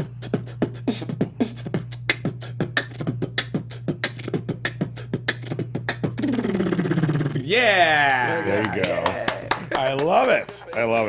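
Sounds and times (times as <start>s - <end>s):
beatboxing drum sounds: 0.0s - 9.6s
held vocal tone: 6.0s - 9.6s.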